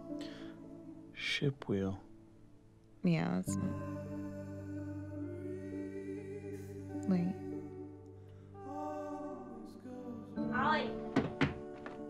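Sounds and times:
soft background score: 0:00.0 - 0:12.0.

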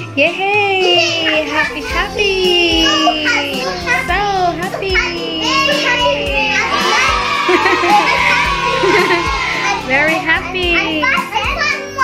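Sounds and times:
background music with steady beat: 0:00.0 - 0:12.0
children singing and calling out: 0:00.5 - 0:12.0.

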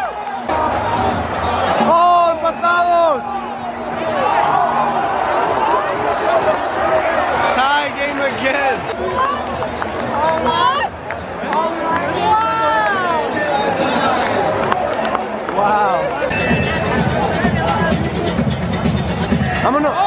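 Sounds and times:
stadium crowd talking and calling: 0:00.0 - 0:20.0.

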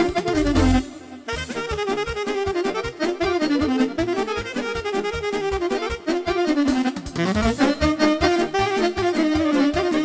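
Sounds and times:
accordion folk dance music: 0:00.0 - 0:10.0.

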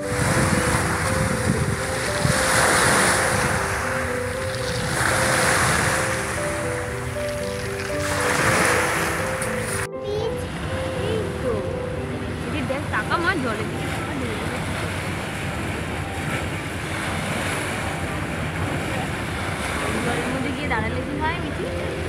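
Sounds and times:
small waves washing on pebbly shore: 0:00.0 - 0:09.8, 0:13.0 - 0:22.0
background music with held notes: 0:00.0 - 0:22.0.

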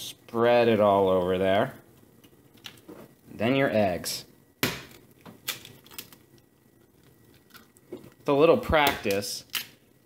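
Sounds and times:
eggshell cracking: 0:04.6 - 0:08.2.

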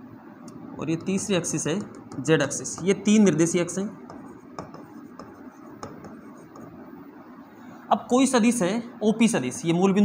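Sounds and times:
chalk tapping: 0:00.9 - 0:06.9
chalk scratching on a board: 0:04.0 - 0:06.8.

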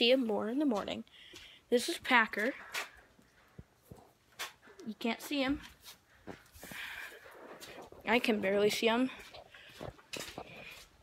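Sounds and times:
horse hooves knocking and scuffing: 0:00.7 - 0:11.0.

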